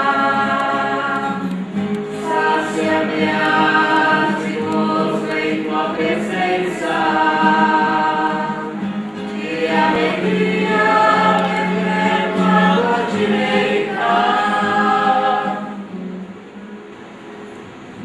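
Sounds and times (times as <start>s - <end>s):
group singing a hymn: 0.0s - 16.0s.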